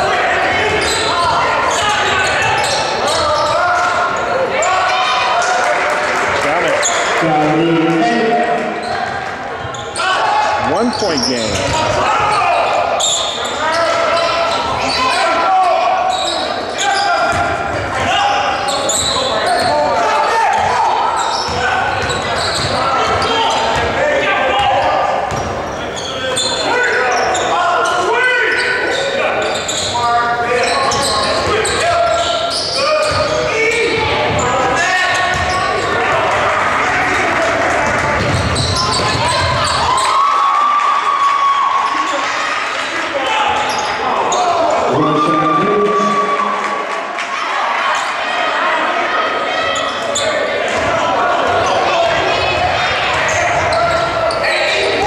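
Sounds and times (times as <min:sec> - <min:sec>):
basketball bouncing on wooden floor: 0:35.3 - 0:35.5
people calling out: 0:43.2 - 0:55.0.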